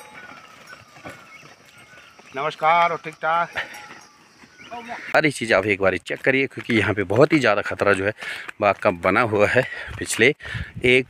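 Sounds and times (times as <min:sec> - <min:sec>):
plough dragging through dry soil: 0:00.0 - 0:08.0
soft thuds of hooves: 0:00.0 - 0:11.0.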